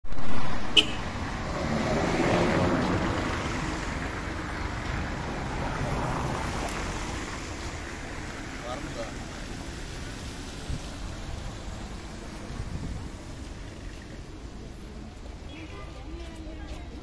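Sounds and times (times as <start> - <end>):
traffic on wet road: 0.1 - 17.0
faint voices: 13.7 - 17.0.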